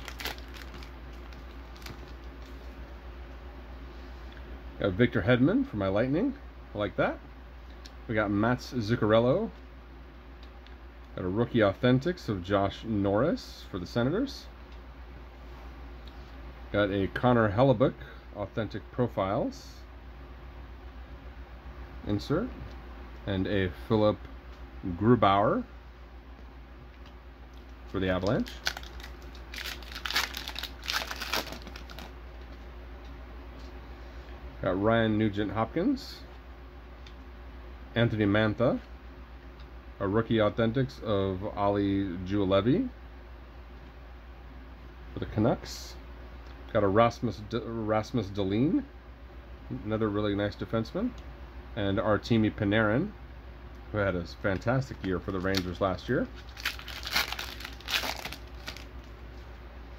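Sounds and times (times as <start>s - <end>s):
wrapper crinkling torn open: 0.0s - 2.6s, 28.1s - 32.1s, 55.0s - 59.2s.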